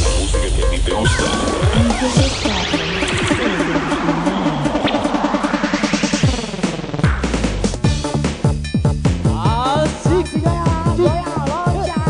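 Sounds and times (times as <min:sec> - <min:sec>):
sweeping effects: 0:00.0 - 0:07.0
electronic dance music: 0:00.0 - 0:12.0.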